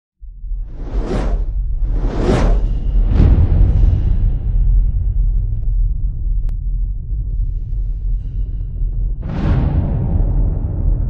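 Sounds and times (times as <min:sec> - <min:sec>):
heavy low rumble: 0:00.2 - 0:11.0
whoosh sound effect: 0:00.8 - 0:03.8.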